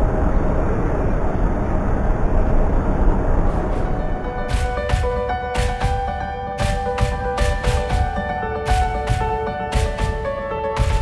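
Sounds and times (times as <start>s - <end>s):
low rumble of busy indoor space: 0.0s - 4.3s.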